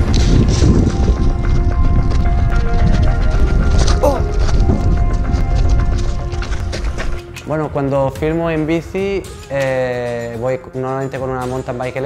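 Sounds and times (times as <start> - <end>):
running footsteps on rocky ground: 0.0 - 8.7
background music: 0.0 - 12.0
person shouting: 4.0 - 4.2.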